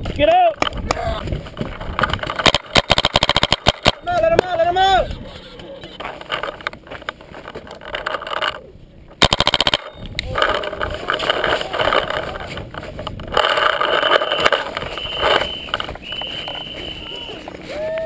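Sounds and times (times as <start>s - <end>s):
wind on microphone: 0.0s - 2.4s, 10.0s - 16.6s
rustling movement: 0.0s - 17.8s
paintball marker rapid firing: 2.0s - 4.5s, 9.2s - 12.5s, 13.3s - 15.8s.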